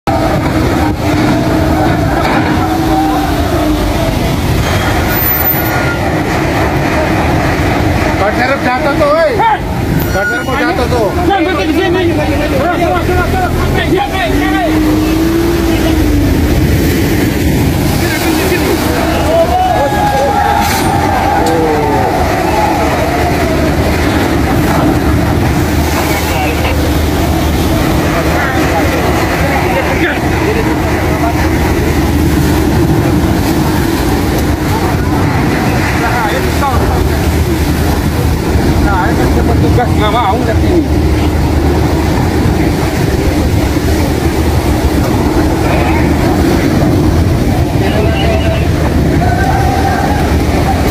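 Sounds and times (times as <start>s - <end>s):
ferry engines droning: 0.0s - 50.9s
waves washing over pier: 0.0s - 50.9s
wind: 0.0s - 50.9s
people calling out: 1.4s - 6.2s, 47.6s - 50.9s.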